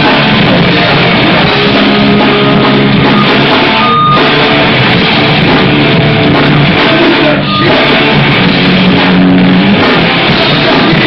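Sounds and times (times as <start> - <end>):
bass: 0.0 - 11.0
distorted electric guitars: 0.0 - 11.0
drum kit: 0.0 - 11.0.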